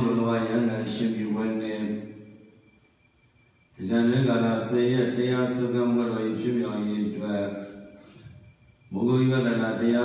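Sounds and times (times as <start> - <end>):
monk chanting in monotone: 0.0 - 2.3, 3.8 - 8.0, 8.9 - 10.0.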